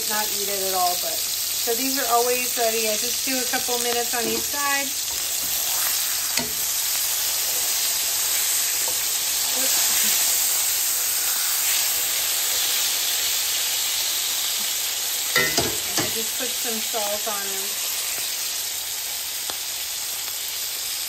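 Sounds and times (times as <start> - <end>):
burger patties sizzling: 0.0 - 21.0.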